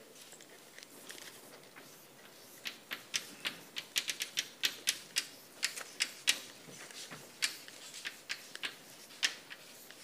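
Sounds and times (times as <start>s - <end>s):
chalk tapping on blackboard: 1.7s - 10.0s.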